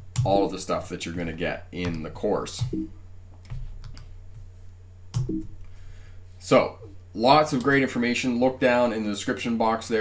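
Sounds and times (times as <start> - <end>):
low electrical hum: 0.0 - 10.0
computer keys clicking: 2.6 - 4.1, 5.1 - 5.5.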